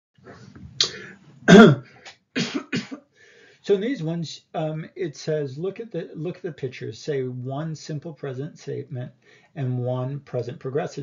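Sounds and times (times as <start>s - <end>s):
person clearing throat: 0.7s - 3.0s.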